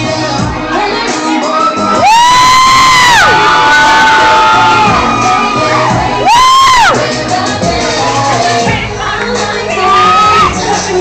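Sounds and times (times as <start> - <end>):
club music: 0.0 - 11.0
crowd cheering: 0.9 - 10.6
high-pitched whoops: 1.4 - 7.0, 9.8 - 10.6.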